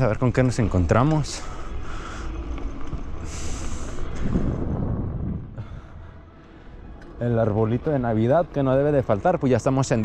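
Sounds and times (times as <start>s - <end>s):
low rumble: 0.0s - 7.8s
wind on microphone: 2.9s - 6.2s.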